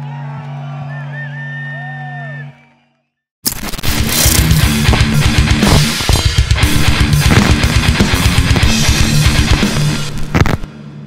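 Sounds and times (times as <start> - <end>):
crowd shouting: 0.0 - 2.9
whistle: 0.8 - 3.1
loud rock music: 3.7 - 11.0
rock band chord ringing out: 3.8 - 11.0.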